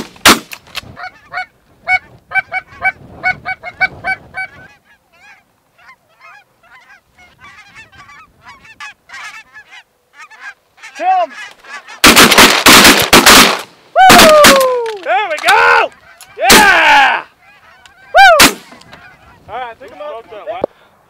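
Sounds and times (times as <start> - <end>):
flock of geese honking and cackling: 1.0 - 12.1, 15.5 - 20.9
geese honking: 1.0 - 12.8, 15.4 - 20.7.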